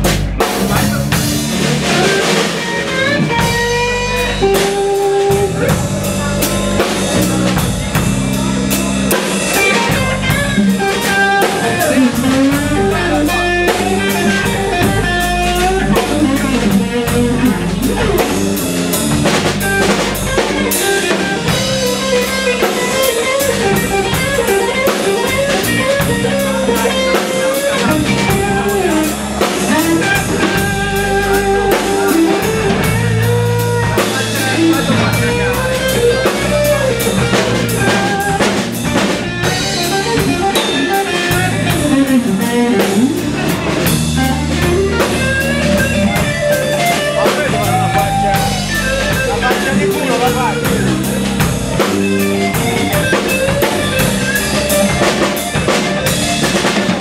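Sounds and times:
drum kit steady beat: 0:00.0 - 0:57.0
electric bass: 0:00.0 - 0:57.0
electric guitar lead with bent notes: 0:00.0 - 0:57.0.

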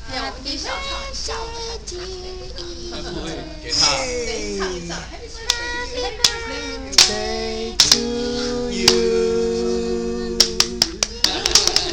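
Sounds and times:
toddler clapping hands: 0:10.5 - 0:11.9.

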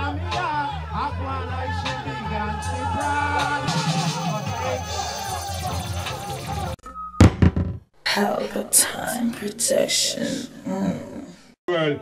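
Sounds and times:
music: 0:00.0 - 0:07.6.

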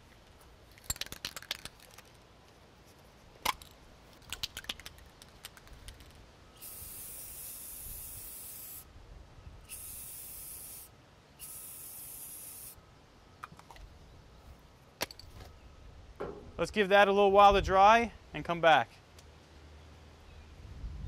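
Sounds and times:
spray paint can hissing: 0:05.3 - 0:08.9, 0:09.7 - 0:12.8.

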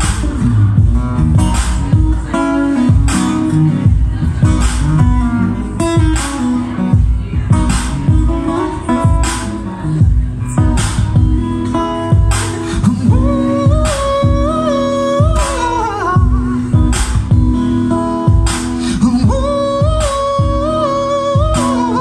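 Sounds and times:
acoustic guitar playing: 0:00.0 - 0:22.0
low beat: 0:00.0 - 0:22.0.

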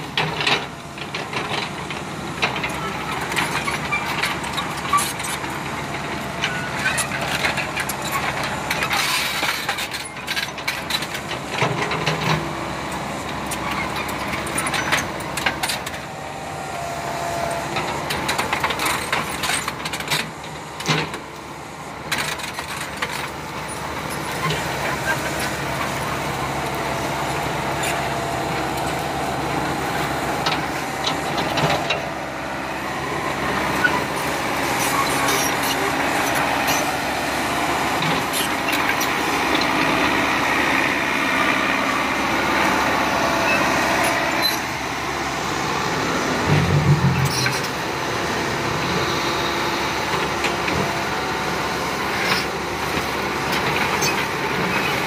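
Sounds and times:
excavator knocks and clanks: 0:00.0 - 0:32.2, 0:33.0 - 0:41.8, 0:46.3 - 0:49.4, 0:50.0 - 0:55.0
excavator diesel engine: 0:00.0 - 0:55.0.

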